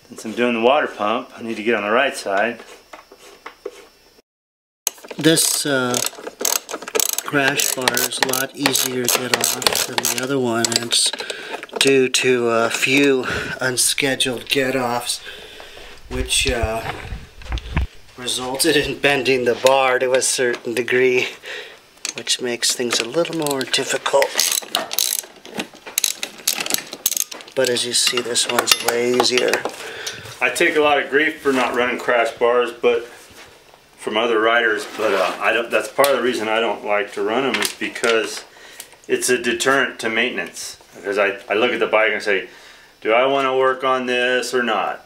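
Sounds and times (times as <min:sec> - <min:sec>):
socket ratchet burst: 0:04.9 - 0:10.3, 0:24.4 - 0:25.3, 0:26.0 - 0:27.4.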